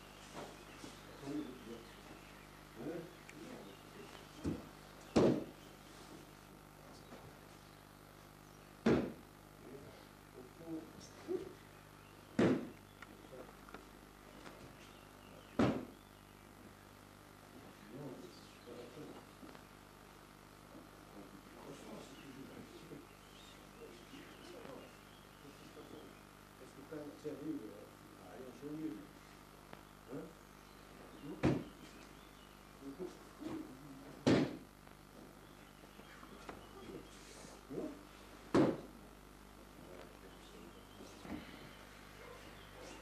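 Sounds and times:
bodies thudding on a mat: 4.4 - 5.5, 8.8 - 9.2, 12.4 - 12.7, 15.6 - 16.0, 34.2 - 34.6, 38.5 - 38.9.

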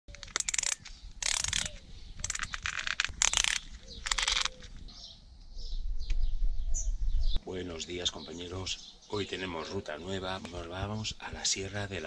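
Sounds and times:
ratcheting dial clicking: 0.2 - 4.5.

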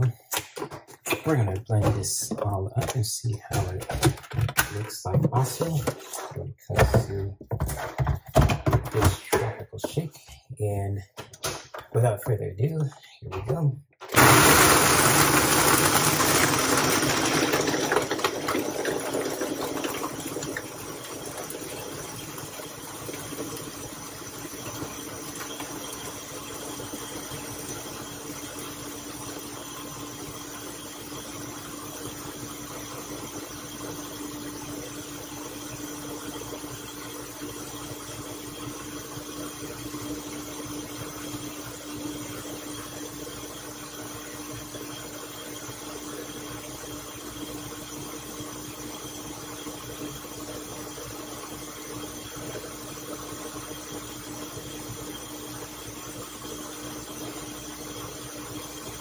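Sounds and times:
blender blending ice: 14.0 - 59.0.

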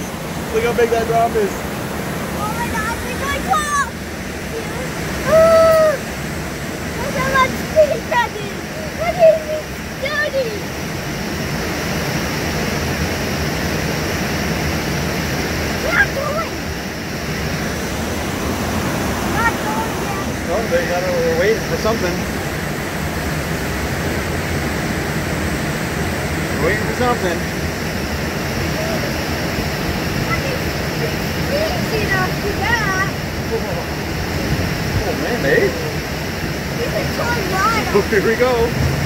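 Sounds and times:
whitewater rushing: 0.0 - 39.0.

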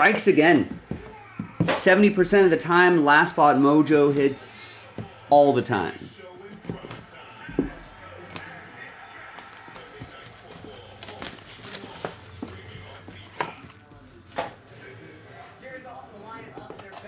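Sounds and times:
plastic shrink wrap crinkling: 8.2 - 14.4.

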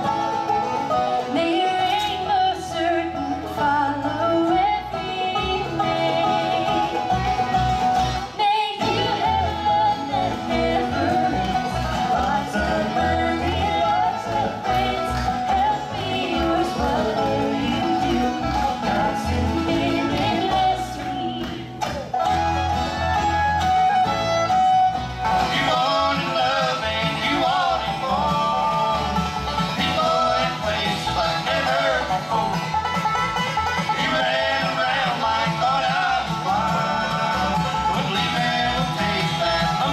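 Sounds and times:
bluegrass band playing: 0.0 - 39.9
different band's tune: 0.0 - 39.9
held fiddle notes: 0.0 - 39.9.

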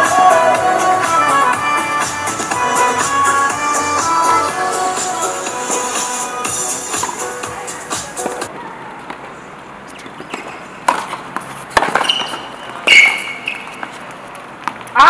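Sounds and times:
background music: 0.0 - 8.5
shoe squeaks: 9.8 - 14.2
tennis ball struck by rackets: 10.0 - 14.0
ball bouncing on hard court: 10.2 - 14.0.

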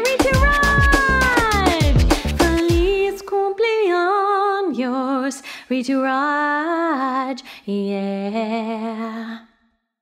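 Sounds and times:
birthday song instrumental backing: 0.0 - 3.0.

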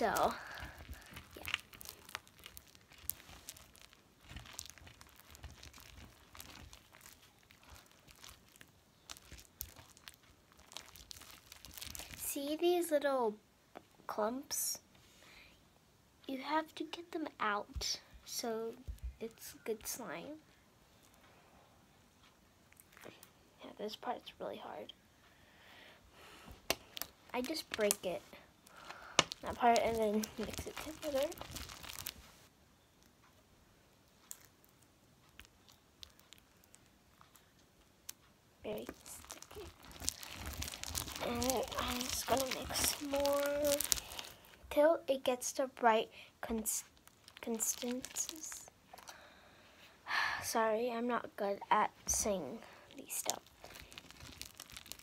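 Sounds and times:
sticky slime crackling and clicking: 0.0 - 12.3, 26.6 - 32.2, 34.1 - 44.5, 46.5 - 48.6, 53.1 - 55.0.

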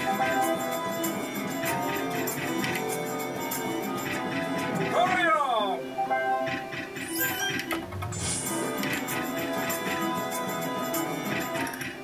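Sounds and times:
slot machine background music: 0.0 - 12.0.

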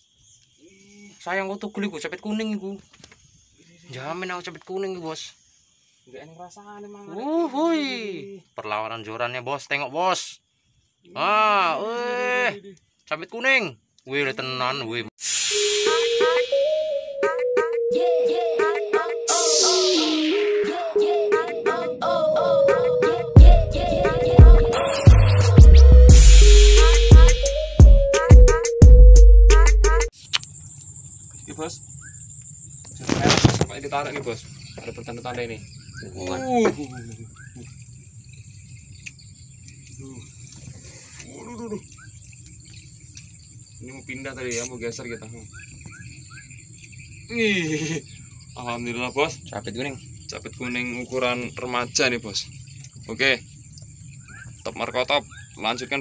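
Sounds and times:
insect drone: 0.0 - 28.7, 29.6 - 56.0
short rising chirps: 15.2 - 29.2
electronic music with synth: 15.2 - 30.1
sharp click: 30.2 - 30.5.

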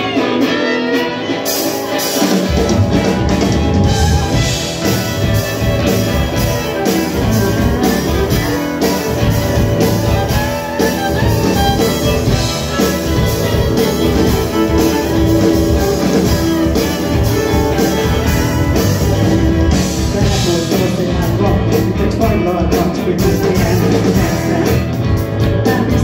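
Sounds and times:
bass: 0.0 - 26.0
drum kit steady beat: 0.0 - 26.0
electric guitars: 0.0 - 26.0
bowed violin: 10.1 - 19.7.

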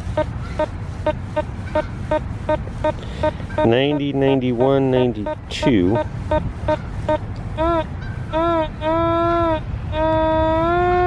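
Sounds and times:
metal detector beeping: 0.0 - 7.8.

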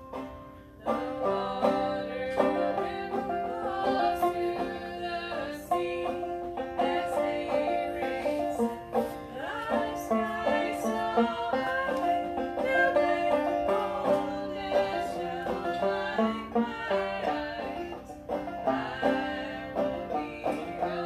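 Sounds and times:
banjo plucking: 0.0 - 21.0
voices singing: 0.8 - 21.0.

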